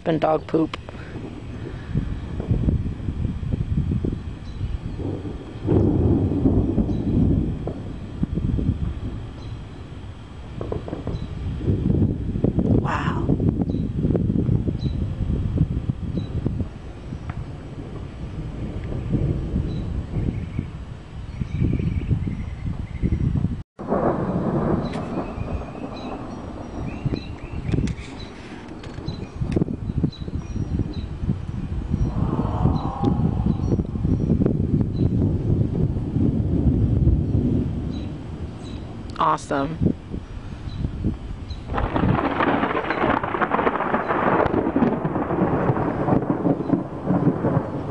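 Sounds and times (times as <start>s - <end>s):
thunder rumbling: 0.0s - 47.9s.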